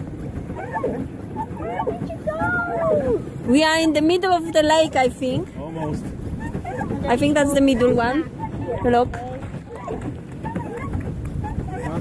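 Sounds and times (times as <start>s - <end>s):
choppy water: 0.0s - 12.0s
wind rumbling on microphone: 0.0s - 12.0s
faint voices: 0.4s - 12.0s.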